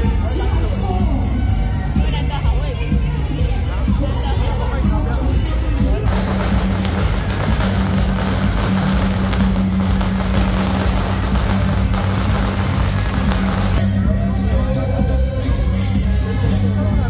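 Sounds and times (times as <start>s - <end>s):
gongs and cymbals clashing: 6.0s - 14.0s.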